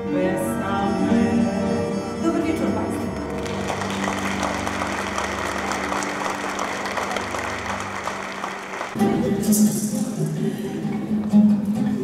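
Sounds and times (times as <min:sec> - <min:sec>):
audience applauding: 0:03.1 - 0:09.2.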